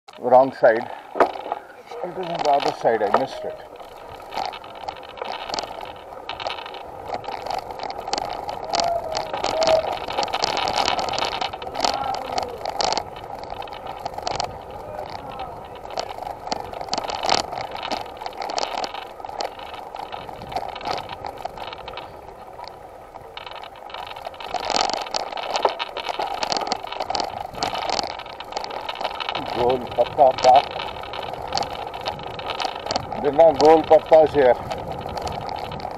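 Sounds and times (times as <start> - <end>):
bicycle rattling: 0.1 - 35.9
tyre and wind noise: 0.1 - 35.9
small knocks: 0.8 - 35.9.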